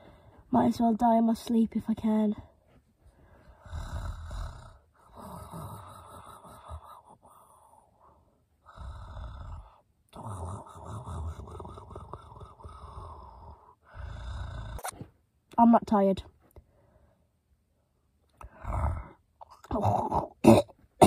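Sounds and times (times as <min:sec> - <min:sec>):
person pretend snoring: 0:03.6 - 0:07.8, 0:08.6 - 0:15.0, 0:18.4 - 0:20.5.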